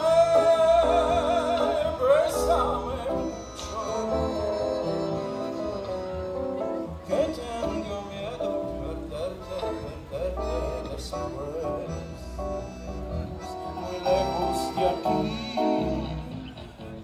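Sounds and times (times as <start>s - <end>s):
live band playing bolero: 0.0s - 17.0s.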